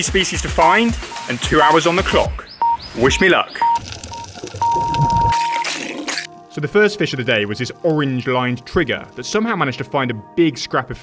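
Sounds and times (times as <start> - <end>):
countdown timer beeps: 0.4 - 5.6.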